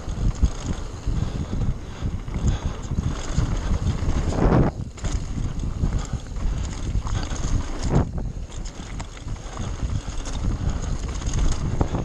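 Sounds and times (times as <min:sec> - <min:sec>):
bike rattling and knocking: 0:00.0 - 0:12.0
wind buffeting microphone: 0:00.0 - 0:12.0
tyres rumbling on dirt: 0:02.4 - 0:12.0.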